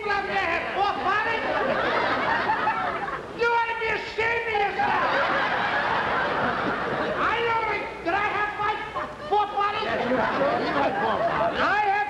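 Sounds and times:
audience laughing: 0.2 - 3.4, 4.7 - 7.9, 8.7 - 11.9.

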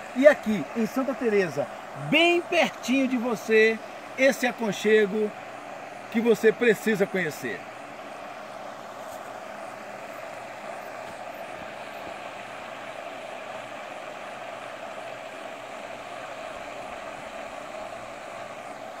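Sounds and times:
fountain spraying water: 0.0 - 5.4, 6.1 - 7.6.

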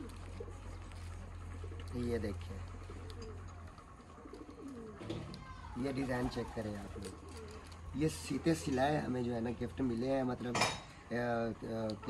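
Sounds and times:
pigeons cooing: 0.0 - 10.2.

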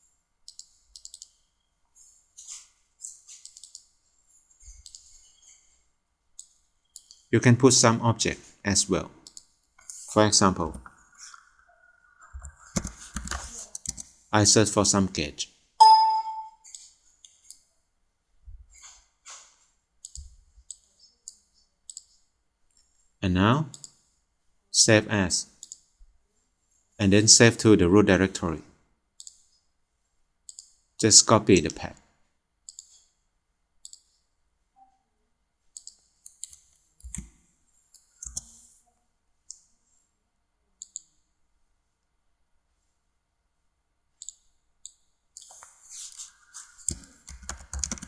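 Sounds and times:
computer mouse clicking: 0.4 - 1.4, 3.3 - 3.9, 4.8 - 5.1, 6.4 - 7.3, 9.2 - 10.0, 12.1 - 14.2, 20.0 - 22.2, 25.6 - 25.9, 29.2 - 29.6, 30.5 - 30.8, 32.6 - 33.1, 33.8 - 34.2, 35.7 - 38.6, 40.8 - 41.2, 44.2 - 45.8, 46.6 - 48.0.

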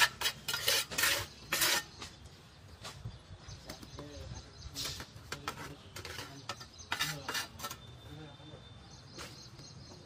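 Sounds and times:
trowel scraping concrete: 0.0 - 2.2, 4.7 - 8.0
voices talking: 3.5 - 10.0.

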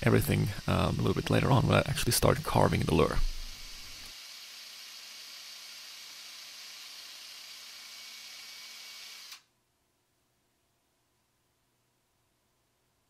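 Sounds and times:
microphone hiss: 0.0 - 4.1.

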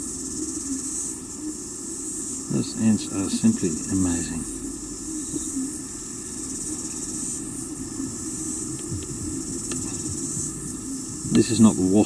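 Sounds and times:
insects chirring: 0.0 - 12.0
low steady rumble: 0.0 - 12.0.

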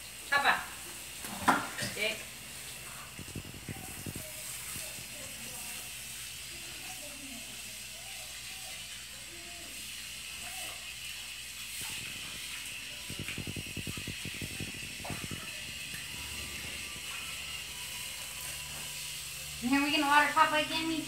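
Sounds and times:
garden hose spraying water: 0.0 - 21.0
rapid low fluttering: 11.8 - 17.2.

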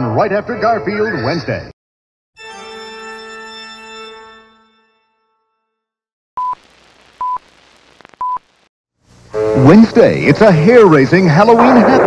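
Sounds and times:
faint tape hiss: 6.4 - 12.0.

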